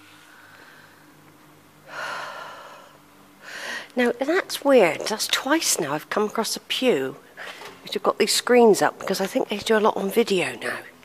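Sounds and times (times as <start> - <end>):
low room hum: 0.0 - 11.0
woman's sharp breath: 1.9 - 3.9.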